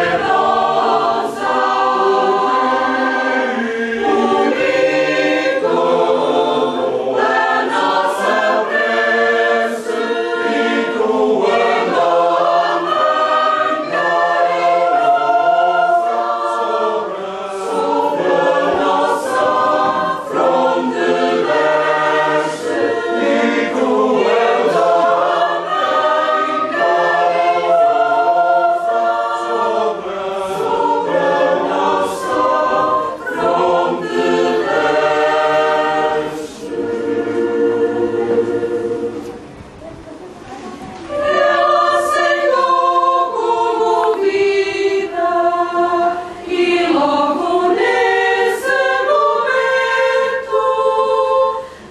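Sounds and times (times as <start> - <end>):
choir singing in harmony: 0.0 - 51.9.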